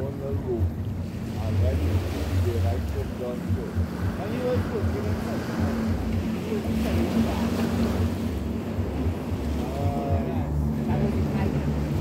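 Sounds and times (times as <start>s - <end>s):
small waves washing onto beach: 0.0s - 12.0s
wind rumbling on microphone: 0.0s - 12.0s.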